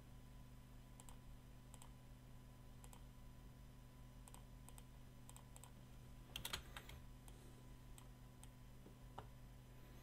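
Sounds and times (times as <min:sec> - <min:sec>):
low steady hum: 0:00.0 - 0:10.0
computer mouse clicks: 0:01.0 - 0:02.0, 0:02.8 - 0:03.1, 0:04.2 - 0:08.6.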